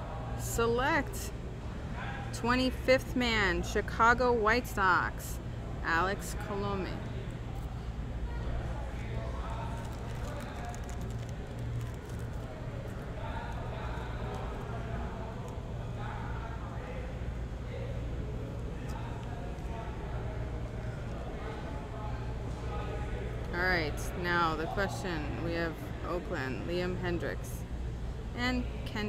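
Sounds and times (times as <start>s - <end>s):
background chatter: 0.0s - 29.0s
steady low hum: 0.0s - 29.0s
cards and plastic sleeve handled: 9.7s - 13.0s.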